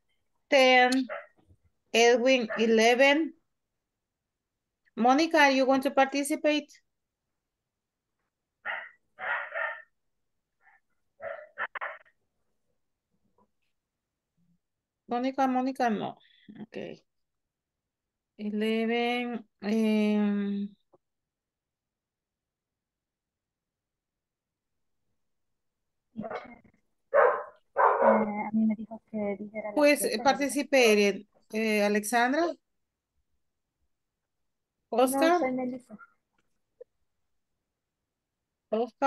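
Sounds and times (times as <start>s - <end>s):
dog barking: 1.1s - 1.4s, 2.4s - 2.8s, 8.6s - 9.9s, 11.2s - 12.2s, 26.2s - 28.3s.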